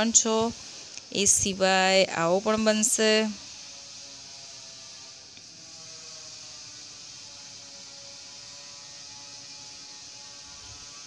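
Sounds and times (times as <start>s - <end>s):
faint electrical hum: 0.0s - 11.0s
steady hiss: 0.0s - 11.0s.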